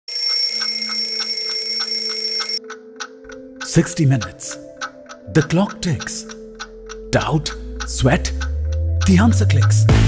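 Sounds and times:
steady high ringing tone: 0:00.1 - 0:02.6
alarm clock ticking: 0:00.1 - 0:10.0.

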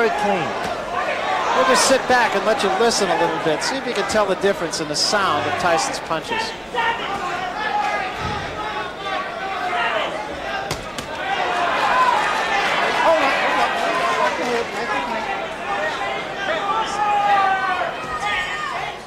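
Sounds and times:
crowd shouting: 0:00.0 - 0:19.0.

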